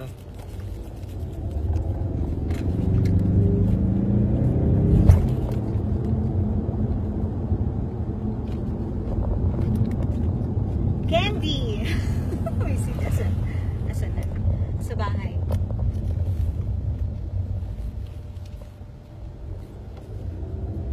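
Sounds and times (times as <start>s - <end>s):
car engine rumble: 0.0s - 20.9s.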